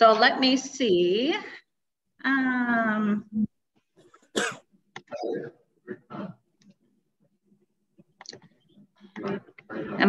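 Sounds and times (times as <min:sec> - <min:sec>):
person coughing: 0:04.3 - 0:04.7.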